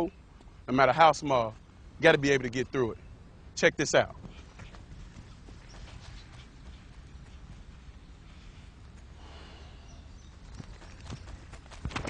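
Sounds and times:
outdoor background noise: 0:00.0 - 0:12.0
footsteps running on grass: 0:04.2 - 0:08.2, 0:10.2 - 0:12.0.

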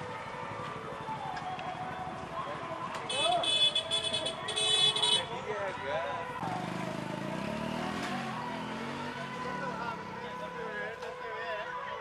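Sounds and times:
shrill vehicle horn: 0:03.1 - 0:05.3
vehicle engine humming: 0:06.1 - 0:11.2.

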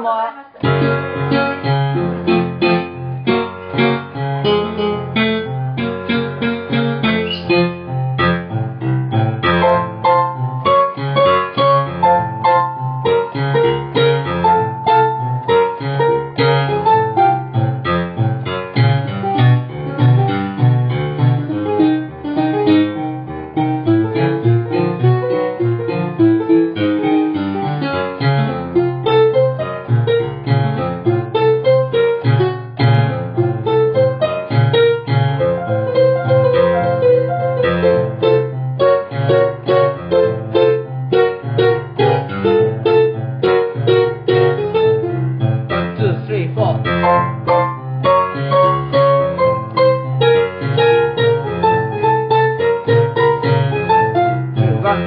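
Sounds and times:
piano music: 0:00.0 - 0:55.0.

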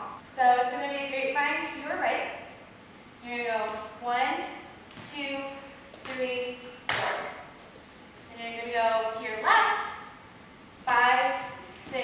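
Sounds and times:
woman speaking: 0:00.0 - 0:02.3, 0:03.2 - 0:07.4, 0:08.3 - 0:10.1, 0:10.8 - 0:12.0.

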